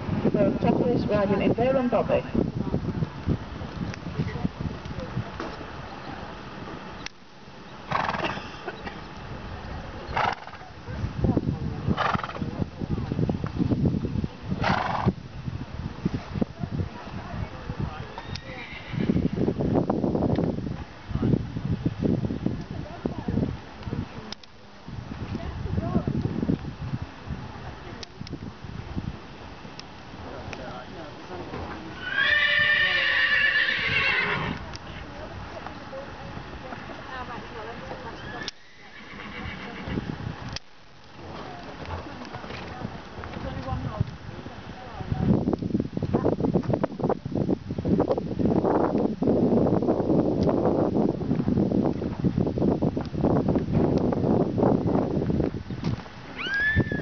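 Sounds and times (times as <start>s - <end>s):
horse whinnying: 7.9s - 8.7s, 10.1s - 10.6s, 18.2s - 19.4s, 32.0s - 34.6s, 38.2s - 40.1s, 56.4s - 57.0s
horse snorting: 7.9s - 8.8s, 10.1s - 10.7s, 12.0s - 12.5s, 14.6s - 15.2s.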